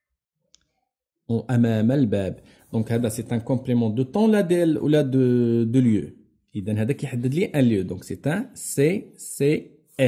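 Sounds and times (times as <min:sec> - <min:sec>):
man speaking: 0:01.3 - 0:10.0.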